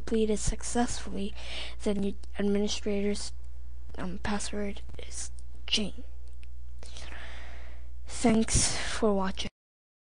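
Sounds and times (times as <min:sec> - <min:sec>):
low electrical hum: 0:00.0 - 0:09.5
faint breathy hiss: 0:01.3 - 0:01.8, 0:06.8 - 0:09.1.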